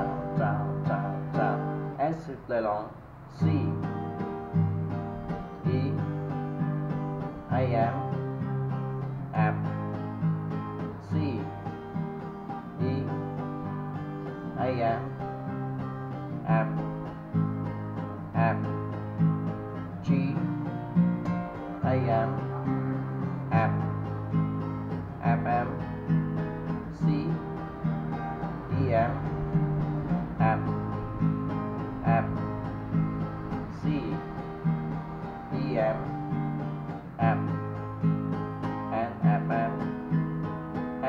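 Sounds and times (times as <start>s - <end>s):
acoustic guitar strumming: 0.0s - 41.0s.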